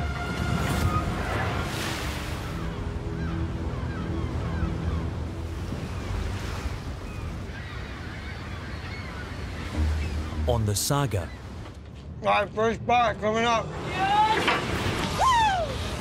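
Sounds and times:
ocean waves rushing: 0.0s - 11.9s
held background music notes: 9.2s - 13.8s.

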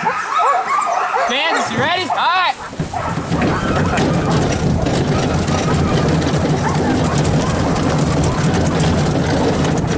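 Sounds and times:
patter of paws: 0.0s - 9.9s
wheels crunching over gravel: 1.6s - 9.9s.

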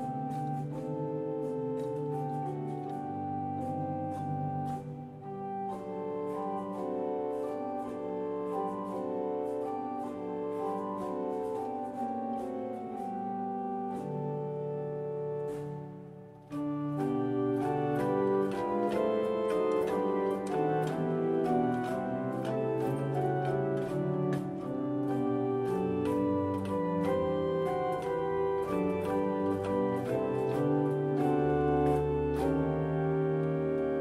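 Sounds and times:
pipe organ sustained chords: 0.0s - 34.0s.

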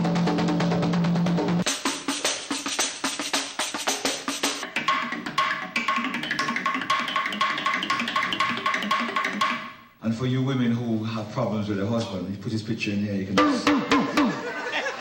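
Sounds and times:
hand drums in busy rhythm: 1.5s - 9.8s, 13.4s - 14.4s.

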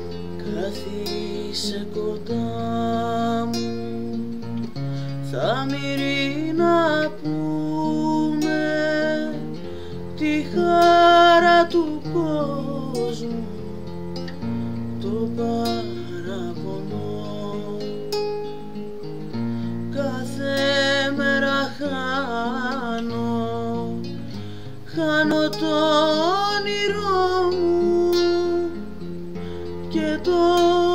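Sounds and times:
acoustic guitar chords: 0.0s - 30.9s.

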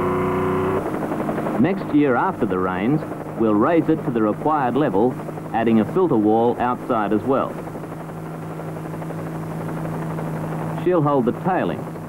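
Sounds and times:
aircraft drone: 0.0s - 12.0s.

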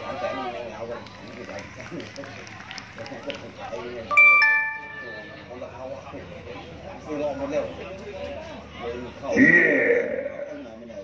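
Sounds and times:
outdoor background noise: 0.0s - 11.0s
people talking: 0.0s - 11.0s.

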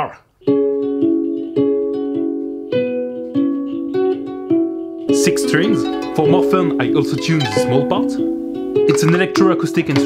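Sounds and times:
lyre strings plucked: 0.4s - 10.0s.

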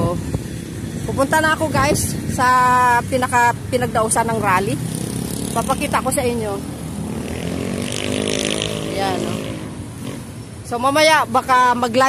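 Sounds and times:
vehicle engine passing by: 3.7s - 10.5s.

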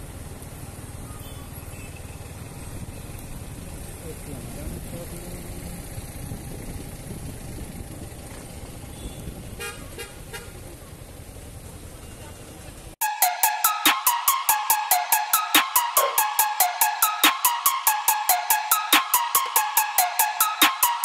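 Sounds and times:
low rumble of wind and engine: 0.0s - 13.0s
vehicle horn toots: 8.9s - 10.6s.

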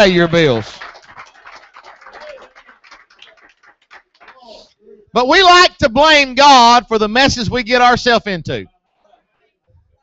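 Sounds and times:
congregation clapping: 0.0s - 4.6s.

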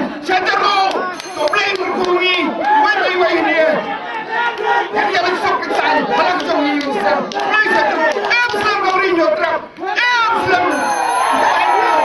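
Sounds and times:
man speaking into a microphone: 0.0s - 3.9s, 5.0s - 12.0s.

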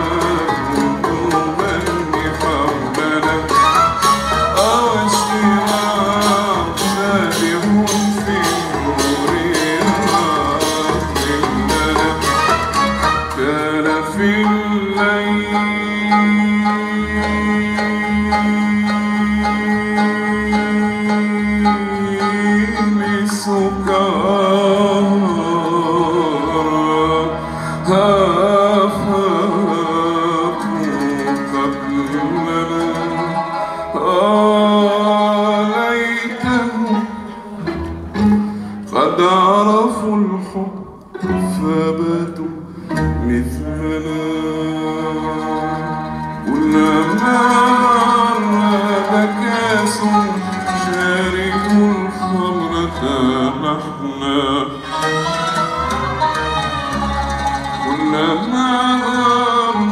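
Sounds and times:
person singing ornamented melody: 0.0s - 37.5s, 38.9s - 59.9s
orchestra playing: 0.0s - 59.9s
plucked and bowed strings: 0.0s - 59.9s.

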